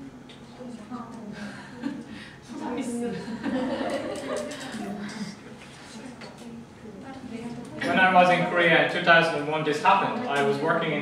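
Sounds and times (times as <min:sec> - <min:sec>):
students talking: 0:00.0 - 0:11.0.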